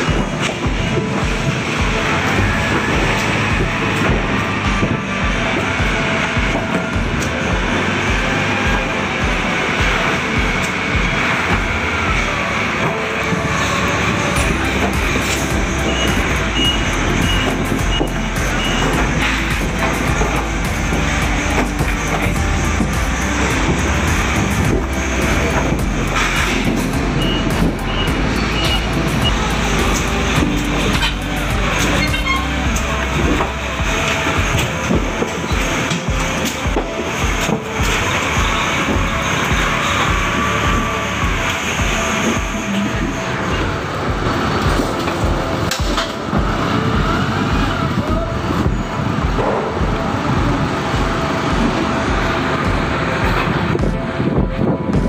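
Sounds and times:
background music: 0:00.0 - 0:55.0
steady low beat: 0:00.0 - 0:55.0
truck and forklift engines: 0:00.0 - 0:55.0.

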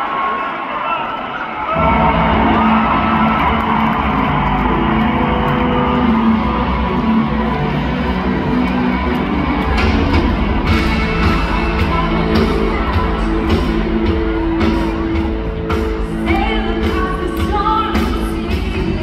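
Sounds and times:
live rock band playing: 0:02.2 - 0:19.0.

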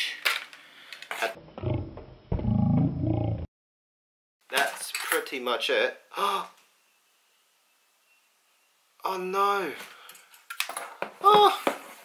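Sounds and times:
low growl sound effect: 0:01.4 - 0:03.5.

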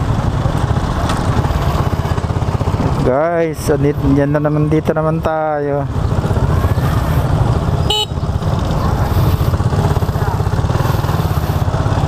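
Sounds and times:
vehicle horn beep: 0:07.8 - 0:08.2.

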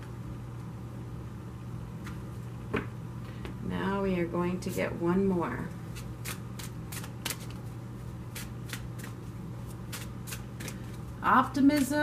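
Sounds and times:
cards being shuffled: 0:05.9 - 0:11.1.

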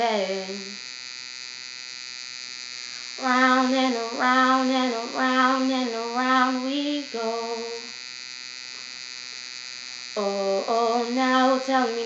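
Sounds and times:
electrical hum with whining hiss: 0:00.0 - 0:12.0.

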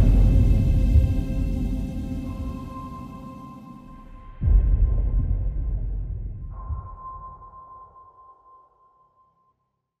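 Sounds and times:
steady high tone: 0:00.0 - 0:04.4
deep bass boom: 0:00.0 - 0:07.1.

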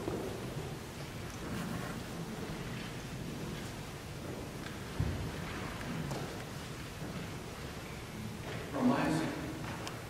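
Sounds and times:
low rumbling church room noise: 0:00.0 - 0:10.0
people rustling and shuffling: 0:00.0 - 0:10.0.

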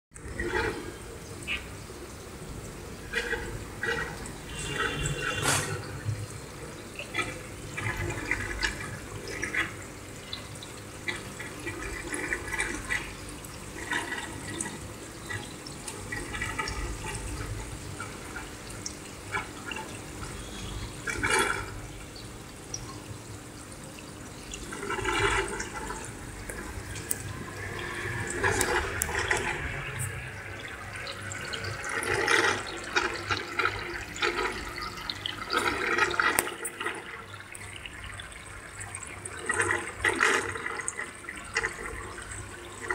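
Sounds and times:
water splashing and gurgling: 0:00.1 - 0:42.9.

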